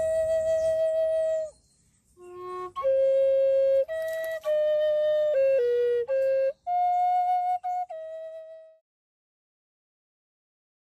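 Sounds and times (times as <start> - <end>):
flute holding long note: 0.0 - 1.5, 2.2 - 8.8.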